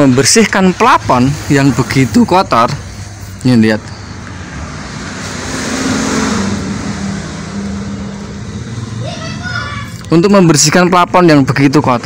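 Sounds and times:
motor vehicle passing: 0:00.0 - 0:12.0.

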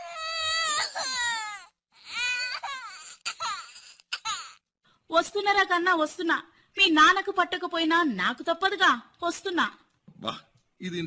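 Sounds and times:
baby crying: 0:00.0 - 0:04.6.

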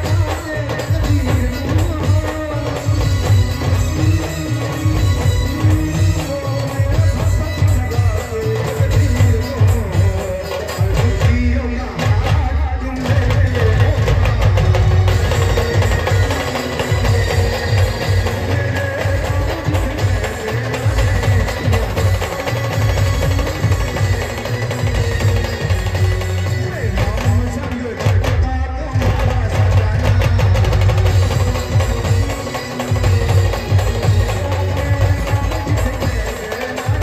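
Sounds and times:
fast drum beats: 0:00.0 - 0:37.0
live band music over speakers: 0:00.0 - 0:37.0.

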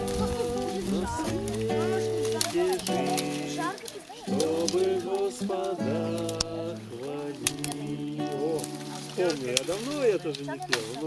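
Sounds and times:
person singing: 0:00.0 - 0:10.8
sharp clicks: 0:06.1 - 0:06.6, 0:07.4 - 0:08.0.

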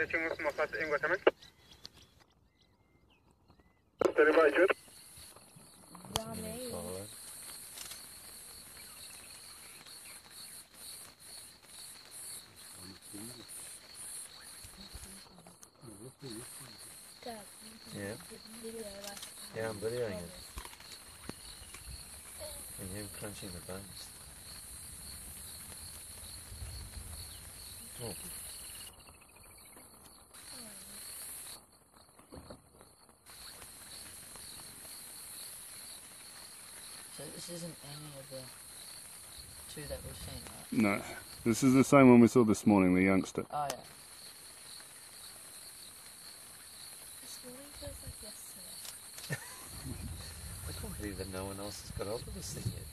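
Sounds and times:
insect chirp pulsing: 0:00.0 - 0:52.9
crickets trilling: 0:03.6 - 0:52.9.

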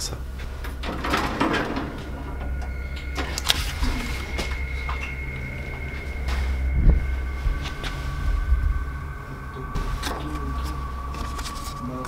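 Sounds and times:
faint high whine: 0:00.0 - 0:12.0
low hum: 0:00.0 - 0:12.0.

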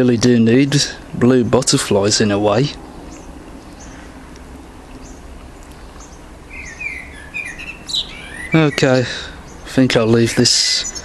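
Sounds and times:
steady background noise: 0:00.0 - 0:11.0
small bird warbling: 0:03.0 - 0:11.0.

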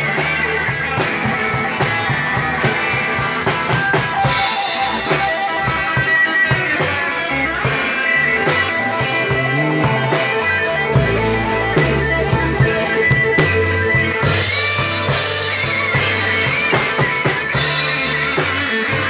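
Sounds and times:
drum kit with cymbal strokes: 0:00.0 - 0:19.0
electric bass: 0:00.0 - 0:19.0
electric guitars: 0:00.0 - 0:19.0.

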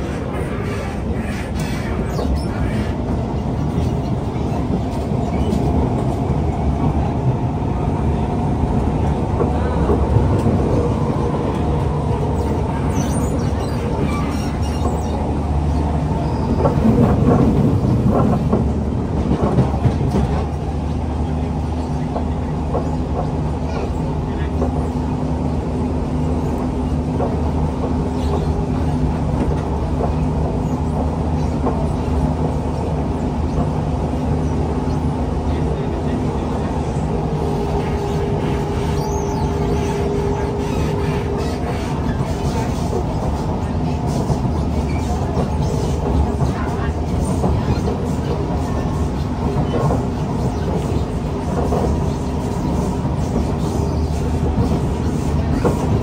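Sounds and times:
train wheels rumbling: 0:00.0 - 0:56.0.

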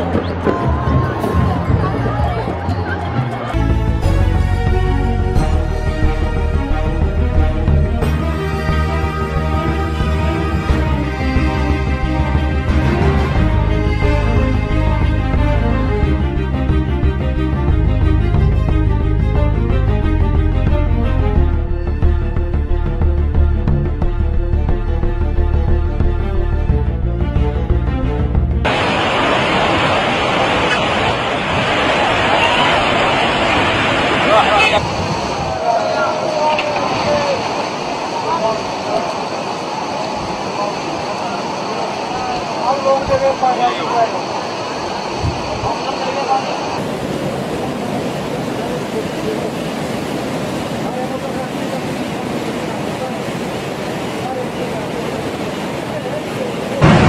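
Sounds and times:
floodwater rushing: 0:00.0 - 0:24.7, 0:27.6 - 0:57.0
music: 0:00.0 - 0:28.7.

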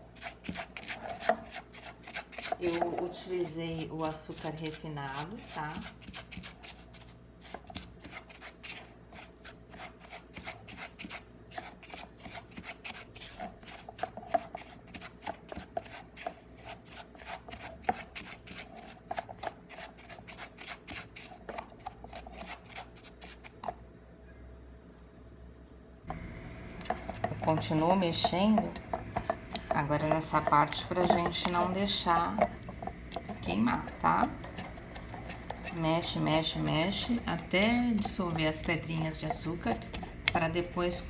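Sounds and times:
spatula scraping sugar in a pan: 0:00.0 - 0:23.6, 0:26.7 - 0:41.0.

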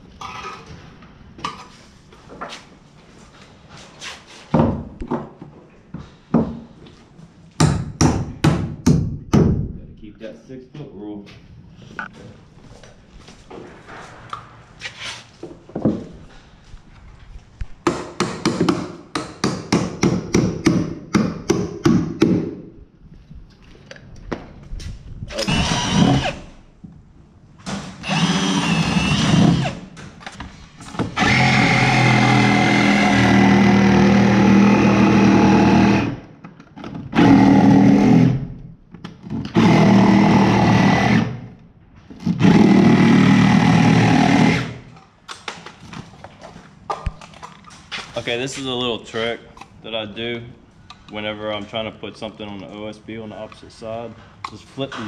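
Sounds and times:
hammer striking wood: 0:07.6 - 0:09.6, 0:17.8 - 0:22.6
power drill running: 0:25.3 - 0:26.5, 0:28.0 - 0:29.9, 0:31.2 - 0:36.2, 0:39.5 - 0:41.3, 0:42.4 - 0:44.8.

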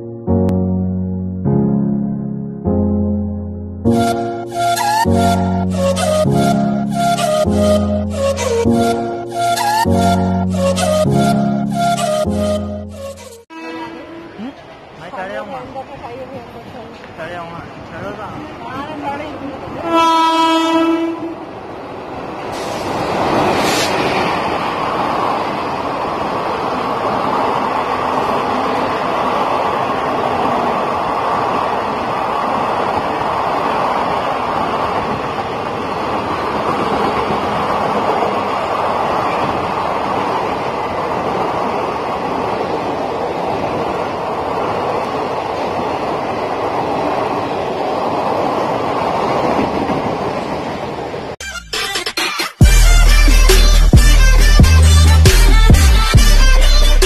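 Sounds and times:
train horn blast: 0:03.9 - 0:14.7, 0:19.8 - 0:21.6
locomotive passing: 0:03.9 - 0:51.4.

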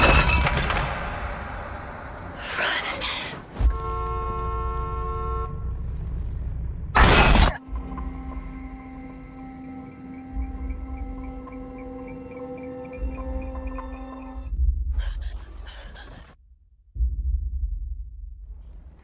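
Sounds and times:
film score drone tones: 0:00.5 - 0:16.2
car horn sounding: 0:03.6 - 0:05.7.

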